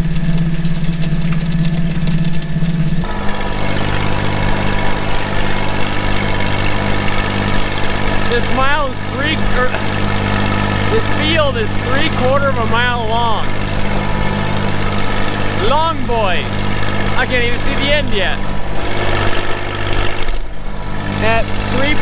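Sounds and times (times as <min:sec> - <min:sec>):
tractor engine running: 0:00.0 - 0:22.0
man's voice: 0:08.3 - 0:09.9, 0:10.9 - 0:13.6, 0:15.6 - 0:16.5, 0:17.2 - 0:18.4, 0:21.2 - 0:22.0.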